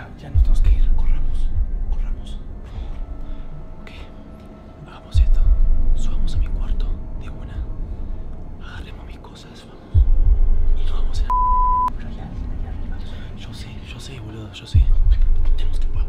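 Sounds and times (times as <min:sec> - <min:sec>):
faint whispering: 0:00.0 - 0:10.0
deep booms: 0:00.4 - 0:02.1
short steady beep: 0:11.3 - 0:11.9.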